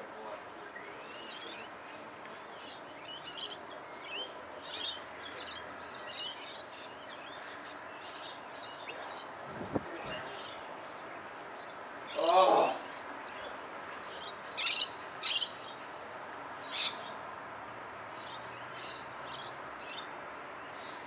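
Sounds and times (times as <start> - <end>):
small birds twittering: 0.6 - 15.9, 16.6 - 17.2.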